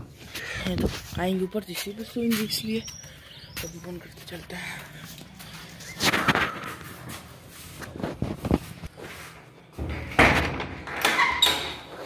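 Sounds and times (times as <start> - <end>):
wooden door banging shut: 9.8 - 11.9.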